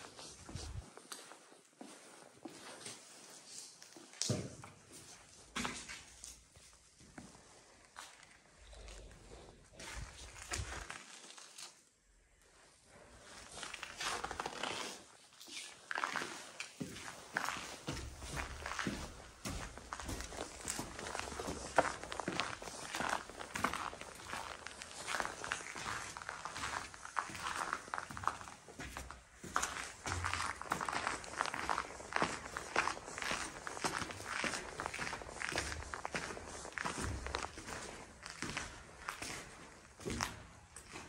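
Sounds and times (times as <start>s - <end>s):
footsteps on concrete floor: 0.0s - 11.7s, 13.1s - 41.0s.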